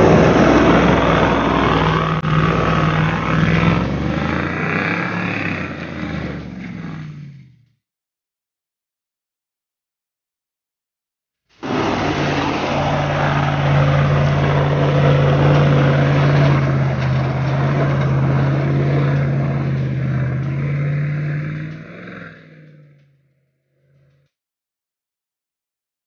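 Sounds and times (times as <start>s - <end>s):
engine droning under load: 0.0s - 7.8s, 11.6s - 24.3s.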